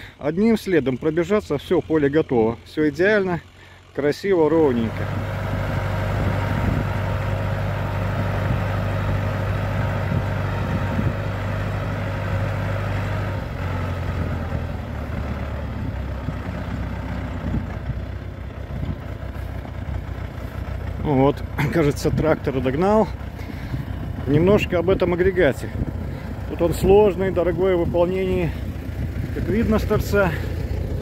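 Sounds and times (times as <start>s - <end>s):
tractor diesel engine running: 0.0s - 31.0s.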